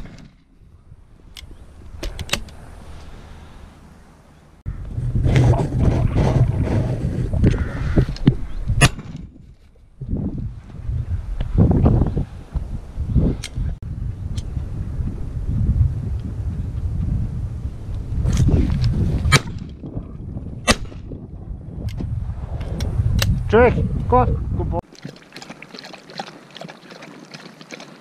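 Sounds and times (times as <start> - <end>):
wind rumbling on microphone: 0.0 - 28.0.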